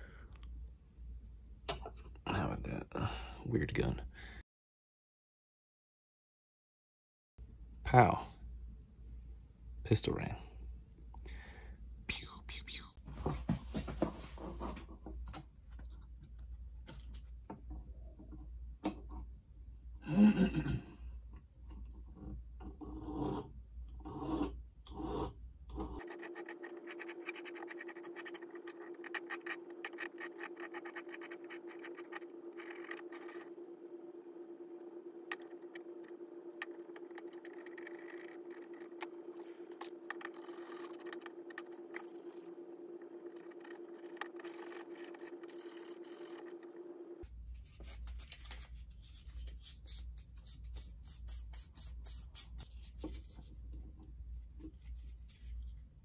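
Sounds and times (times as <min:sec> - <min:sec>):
faint steady hum: 0:07.4 - 0:56.0
abrasive scratching on metal: 0:26.0 - 0:33.5, 0:43.2 - 0:46.6.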